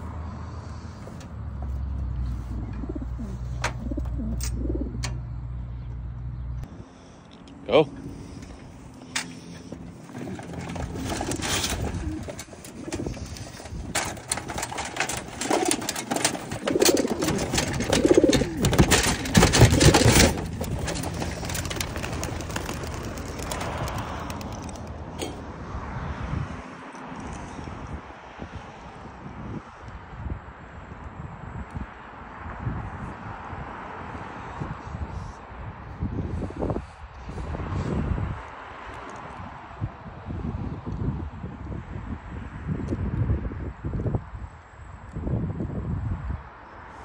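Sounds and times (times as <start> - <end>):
pigeons cooing: 2.2 - 5.3, 9.4 - 25.4
pigeon wings clattering: 9.4 - 25.4.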